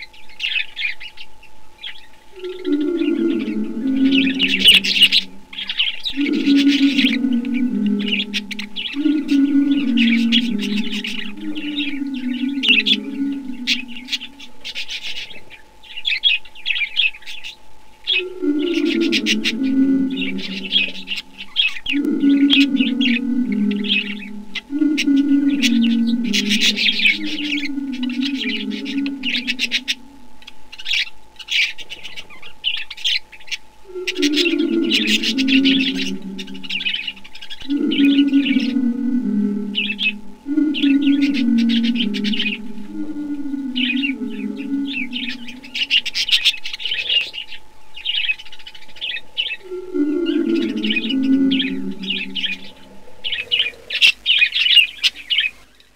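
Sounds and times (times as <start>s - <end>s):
faint steady tone: 0.0s - 55.9s
lower bird call: 0.0s - 55.9s.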